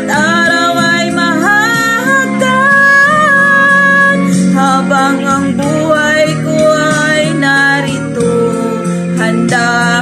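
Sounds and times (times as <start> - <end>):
instrumental backing music: 0.0 - 10.0
woman singing a slow ballad: 0.0 - 10.0.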